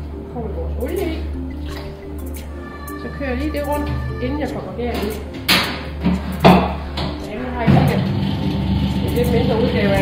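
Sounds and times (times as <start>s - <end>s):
metal clunk: 4.9s - 8.2s
dough mixer humming: 7.7s - 10.0s.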